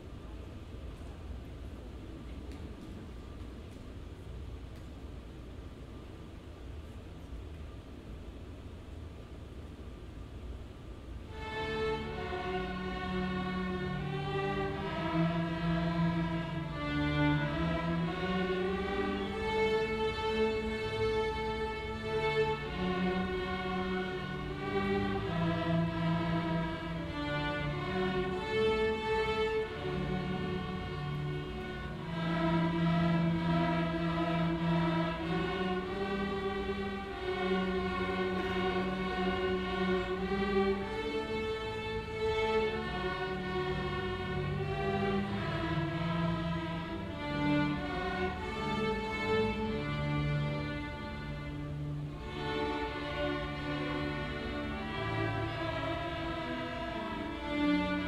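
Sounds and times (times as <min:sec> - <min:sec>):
string orchestra playing simple tune: 0:11.2 - 0:58.0.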